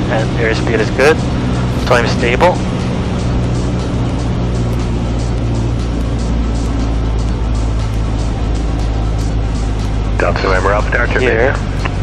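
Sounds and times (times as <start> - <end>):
propeller aircraft engine drone: 0.0 - 12.0
background music with quick beat: 0.4 - 12.0.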